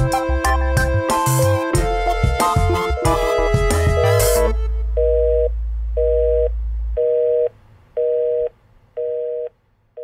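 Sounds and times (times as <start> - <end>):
low hum: 1.8 - 10.0
telephone busy signal: 5.0 - 9.5.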